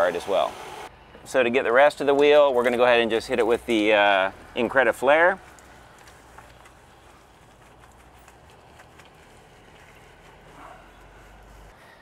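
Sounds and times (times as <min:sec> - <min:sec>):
soft squishes and ticks: 0:05.4 - 0:11.1
brush scrubbing car wheel: 0:06.2 - 0:11.8.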